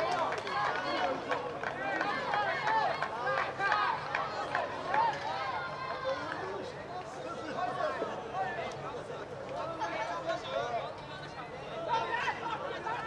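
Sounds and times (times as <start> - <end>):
voices shouting and cheering: 0.0 - 8.8.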